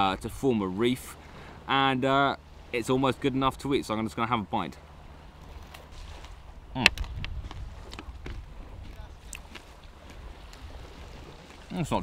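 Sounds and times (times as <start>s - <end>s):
steady low rumble: 0.0s - 11.6s.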